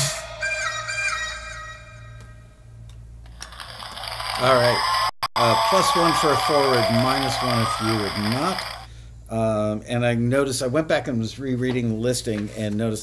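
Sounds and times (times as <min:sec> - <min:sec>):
low steady hum: 0:00.0 - 0:13.0
electronic dance music: 0:05.4 - 0:08.9.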